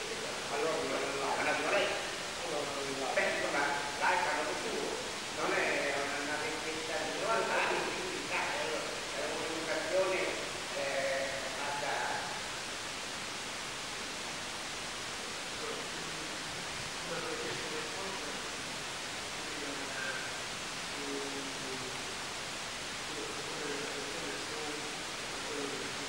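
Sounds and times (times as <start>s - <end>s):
old recording hiss: 0.0s - 26.0s
faint distant speech: 15.5s - 18.6s.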